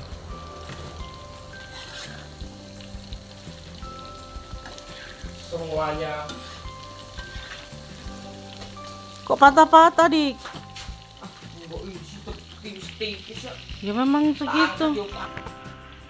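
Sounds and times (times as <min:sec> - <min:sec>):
spatula stirring in wok: 0:00.0 - 0:09.2
tofu sizzling in hot oil: 0:00.0 - 0:16.0.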